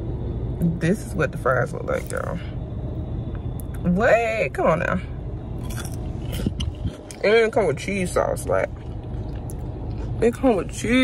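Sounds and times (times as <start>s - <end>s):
person chewing crunchy fry: 5.6s - 7.2s, 8.7s - 10.2s.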